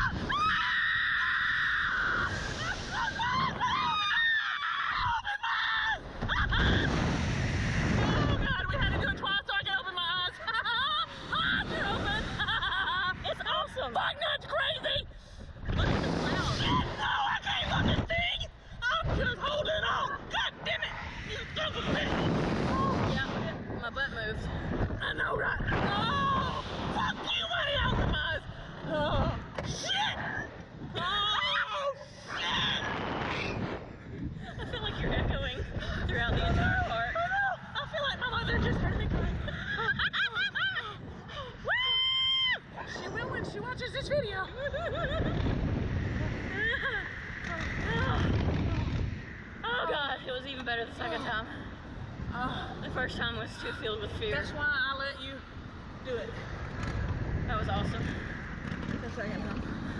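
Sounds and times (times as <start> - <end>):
riders screaming: 0.0 - 9.0, 25.0 - 33.7
wind rushing over microphone: 0.0 - 59.9.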